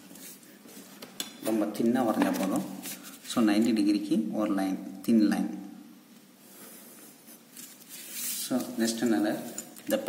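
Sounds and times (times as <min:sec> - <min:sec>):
man speaking: 0:08.5 - 0:10.0.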